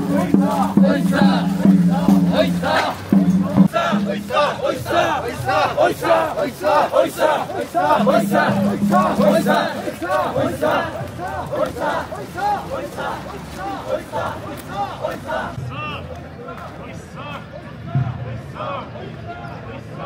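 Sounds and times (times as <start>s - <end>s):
men chanting together: 0.0s - 15.6s.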